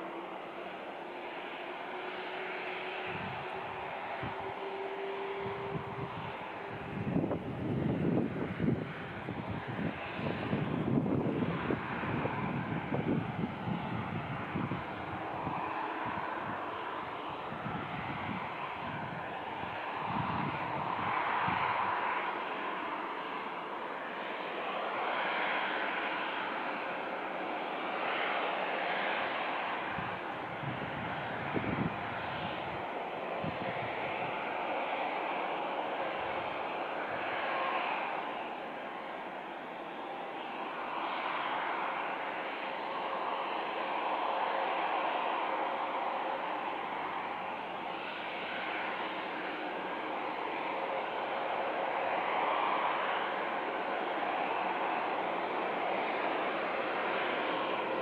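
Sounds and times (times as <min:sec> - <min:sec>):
faint steady whine: 0:00.0 - 0:58.0
jet engines idling: 0:00.0 - 0:58.0.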